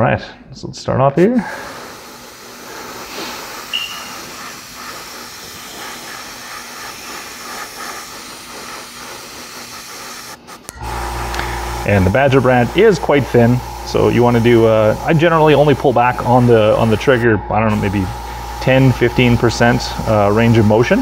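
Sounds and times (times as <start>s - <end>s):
airbrush spraying hiss: 1.4s - 21.0s
low hum: 10.7s - 21.0s.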